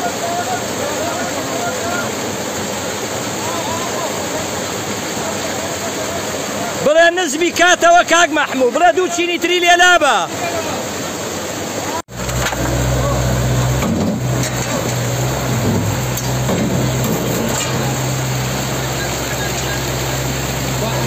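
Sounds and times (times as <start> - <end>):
floodwater rushing over rubble: 0.0 - 21.0
front loader engine running: 12.1 - 21.0.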